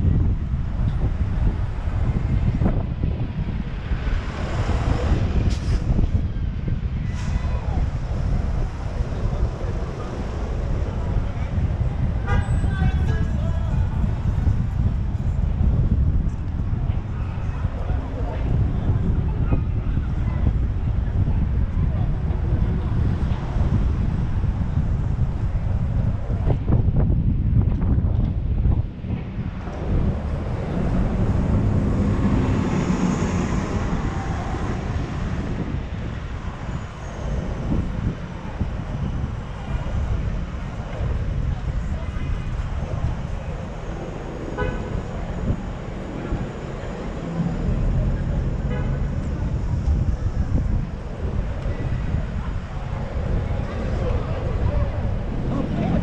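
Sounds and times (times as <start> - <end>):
city street traffic: 0.0 - 56.0
wind rumble on microphone: 0.0 - 56.0
car horn tooting: 12.2 - 12.7, 44.6 - 45.0.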